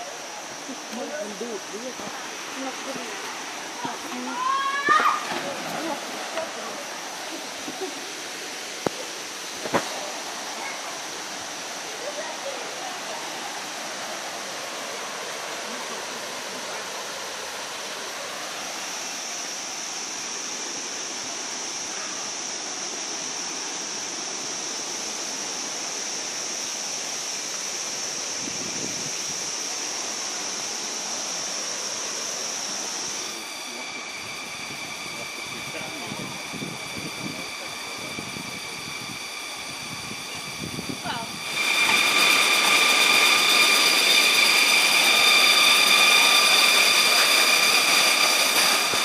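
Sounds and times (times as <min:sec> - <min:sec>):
insect drone: 0:00.0 - 0:49.0
waterfall rushing: 0:00.0 - 0:49.0
steady high tones: 0:30.0 - 0:49.0.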